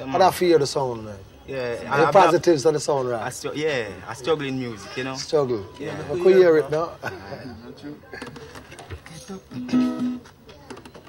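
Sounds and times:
acoustic guitar strumming: 9.5 - 10.3.

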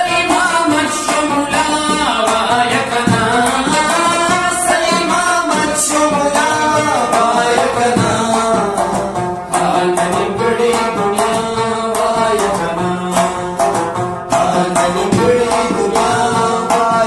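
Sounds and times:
man singing gliding phrases: 0.0 - 17.0
plucked lute quick notes: 0.0 - 17.0.

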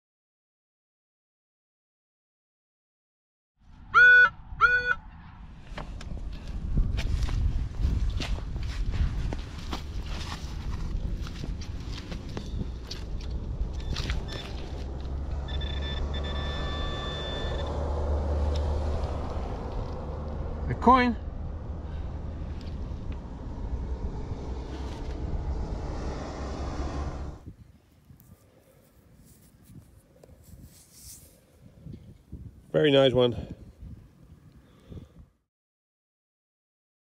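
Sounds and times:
wind on microphone: 4.2 - 14.5, 29.1 - 32.7, 33.3 - 35.3
metal detector beeps: 13.8 - 14.6, 15.4 - 17.8.

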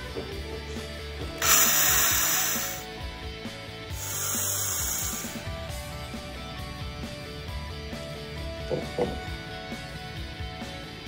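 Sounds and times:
power drill drilling into iron: 1.4 - 2.8.

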